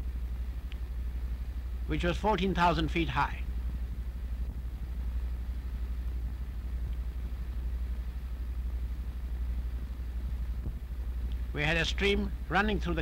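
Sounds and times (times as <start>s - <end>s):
faint hiss: 0.0s - 13.0s
steady low hum: 0.0s - 13.0s.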